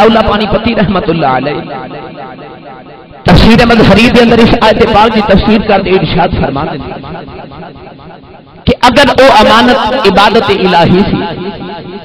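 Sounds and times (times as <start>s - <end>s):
man speaking over public address: 0.0s - 1.8s, 3.3s - 7.0s, 8.7s - 11.5s.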